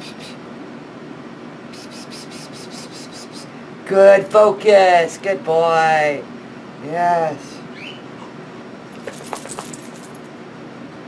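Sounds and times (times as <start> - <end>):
air conditioning hiss: 0.0 - 11.0.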